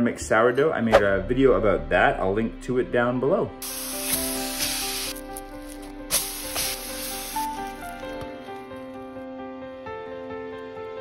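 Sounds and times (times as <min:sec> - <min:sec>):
soft background music: 0:00.0 - 0:11.0
bread sizzling in a frying pan: 0:03.6 - 0:08.0.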